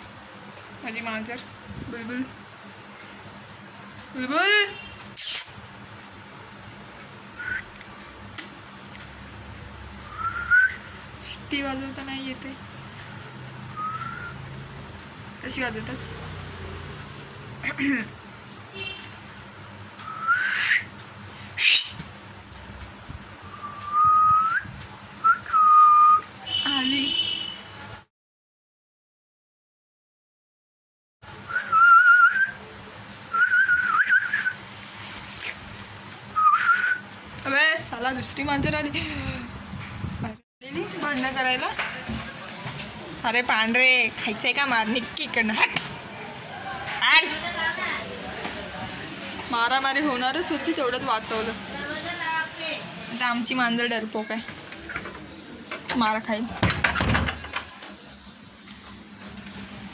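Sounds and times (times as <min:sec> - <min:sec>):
woman whistling: 0:07.4 - 0:07.7, 0:10.1 - 0:10.9, 0:13.8 - 0:14.4, 0:20.0 - 0:20.9, 0:23.5 - 0:26.3, 0:31.5 - 0:32.6, 0:33.3 - 0:34.6, 0:36.4 - 0:37.1.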